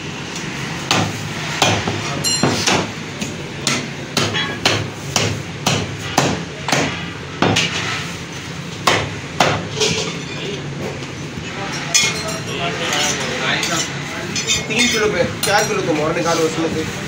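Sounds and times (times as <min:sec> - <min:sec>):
cleaver chopping on wooden block: 0:03.6 - 0:07.7.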